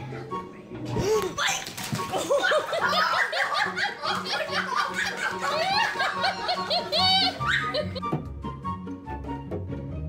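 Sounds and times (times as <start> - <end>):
person laughing: 2.1 - 8.0.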